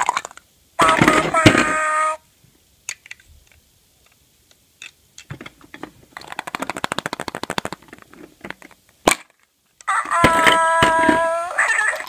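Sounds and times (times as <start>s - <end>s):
plastic capsule clicks: 6.2s - 9.4s
plastic capsule snapping open: 6.2s - 9.4s.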